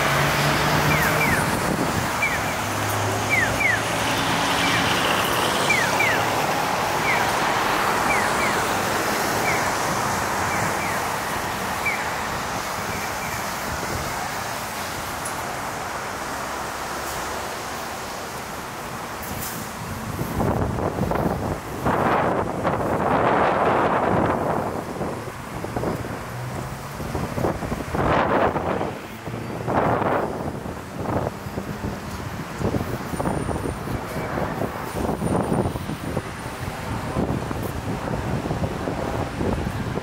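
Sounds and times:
wind on microphone: 0:00.0 - 0:04.0, 0:19.7 - 0:40.0
loud surges of noise: 0:00.0 - 0:40.0
traffic passing: 0:00.0 - 0:40.0.

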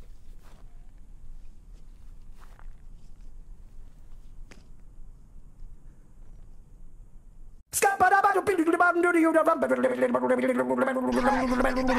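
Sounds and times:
footsteps close to microphone: 0:00.0 - 0:04.9
short scuffs: 0:00.0 - 0:04.9.

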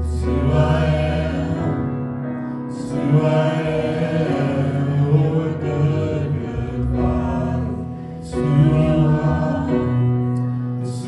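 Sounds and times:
gospel choir singing: 0:00.0 - 0:11.0.

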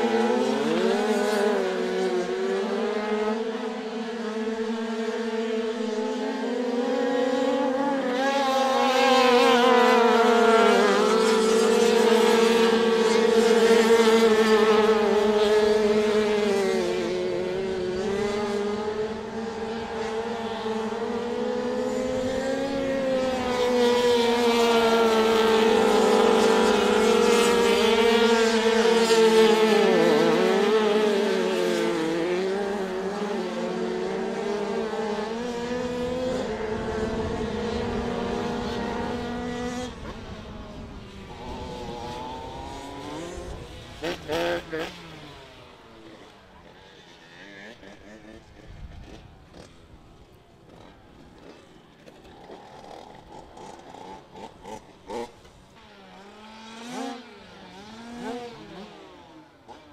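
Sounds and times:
motorcycle engines racing: 0:00.0 - 0:59.9.

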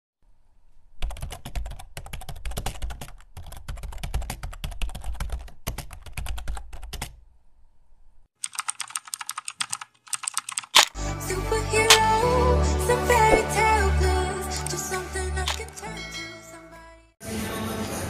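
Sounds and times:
computer keyboard typing: 0:01.0 - 0:07.2, 0:08.4 - 0:11.0.

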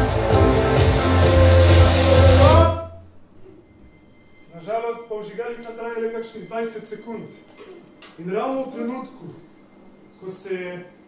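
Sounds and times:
dance music with heavy bass: 0:00.0 - 0:02.8.

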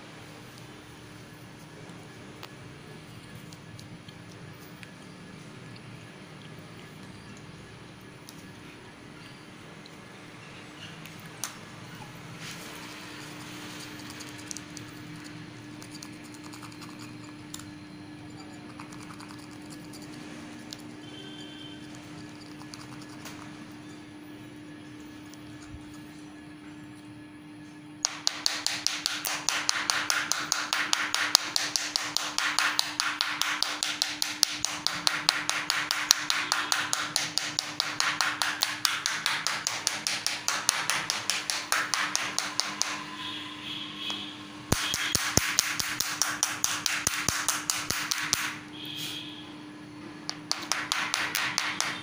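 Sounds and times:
pen scraping on glass screen: 0:12.6 - 0:23.6.

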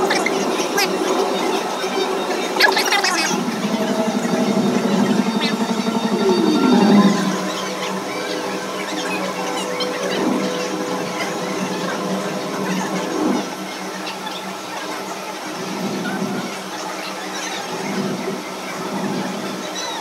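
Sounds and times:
held synthesizer tones: 0:02.5 - 0:12.6.

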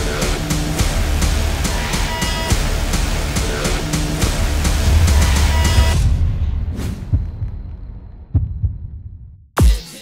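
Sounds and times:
music: 0:00.0 - 0:10.0
deep bass thumps: 0:04.2 - 0:09.4.

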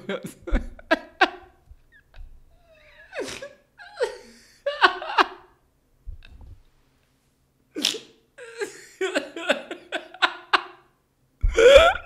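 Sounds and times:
man laughing hard: 0:00.0 - 0:02.2, 0:02.8 - 0:05.6, 0:08.4 - 0:12.0.

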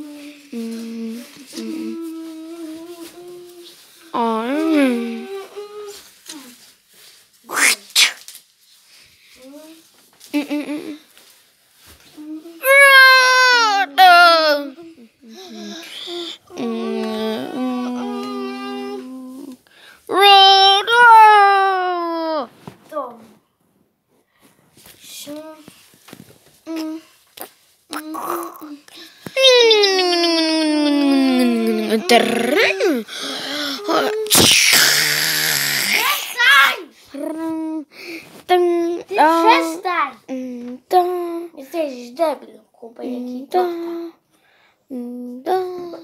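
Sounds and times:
child humming wordless sounds: 0:00.0 - 0:06.6, 0:12.1 - 0:22.5, 0:26.6 - 0:27.2, 0:27.9 - 0:36.3, 0:37.1 - 0:41.6, 0:44.9 - 0:46.0
child squealing: 0:07.5 - 0:08.2, 0:33.9 - 0:36.8
child making breathy hisses: 0:07.5 - 0:08.3, 0:15.3 - 0:16.6, 0:33.0 - 0:36.4.

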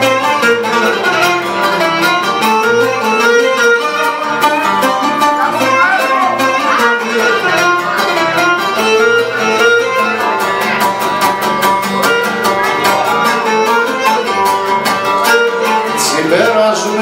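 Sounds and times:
bass guitar: 0:00.0 - 0:17.0
bowed lyra melody: 0:00.0 - 0:17.0
strummed lute and guitar: 0:00.0 - 0:17.0.

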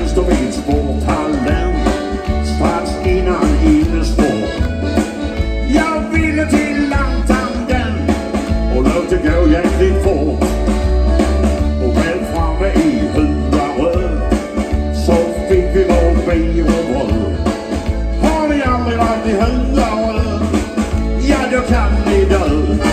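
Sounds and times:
man singing into microphone: 0:00.0 - 0:04.7, 0:05.6 - 0:10.5, 0:11.8 - 0:17.6, 0:18.2 - 0:22.9
bass guitar: 0:00.0 - 0:22.9
drum kit: 0:00.0 - 0:22.9
electric guitar: 0:00.0 - 0:22.9.

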